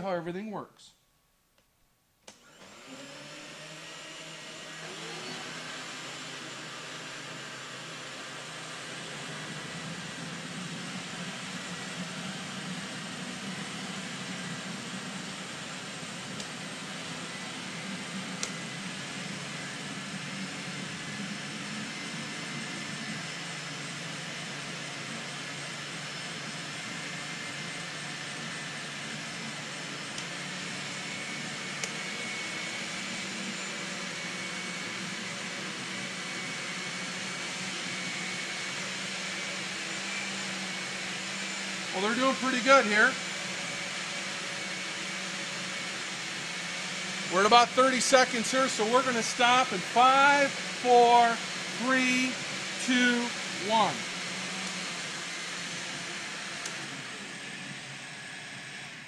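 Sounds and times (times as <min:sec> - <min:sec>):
blender motor whine: 0:02.3 - 0:59.0.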